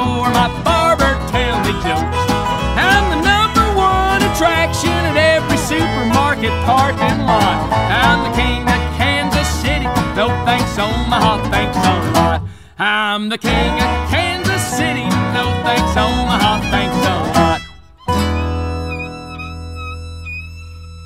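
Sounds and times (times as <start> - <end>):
fiddle: 0.0 - 12.4, 13.5 - 21.0
resonator guitar: 0.0 - 12.6, 13.4 - 21.0
upright bass: 0.0 - 12.7, 13.4 - 21.0
acoustic guitar: 0.0 - 21.0.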